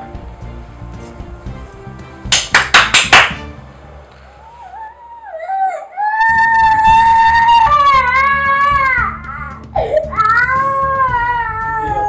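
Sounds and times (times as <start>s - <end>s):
background music: 0.0s - 4.7s, 6.3s - 12.0s
hand claps: 2.3s - 3.5s
boy crying: 4.6s - 12.0s.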